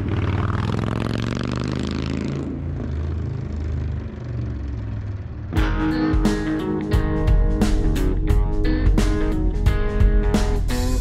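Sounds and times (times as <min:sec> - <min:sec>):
rushing road noise: 0:00.0 - 0:11.0
strummed guitar music: 0:05.6 - 0:11.0.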